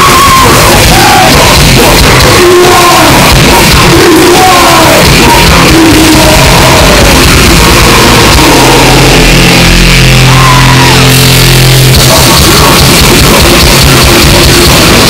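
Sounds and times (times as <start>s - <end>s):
shouted vocals: 0.0s - 11.4s
death metal band playing: 0.0s - 15.0s.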